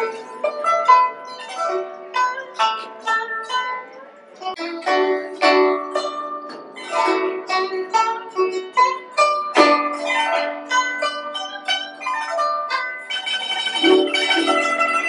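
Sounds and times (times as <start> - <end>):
plucked zither notes: 0.0 - 15.0.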